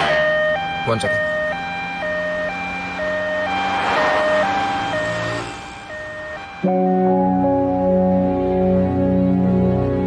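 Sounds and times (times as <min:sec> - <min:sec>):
two-tone emergency siren: 0:00.0 - 0:09.8.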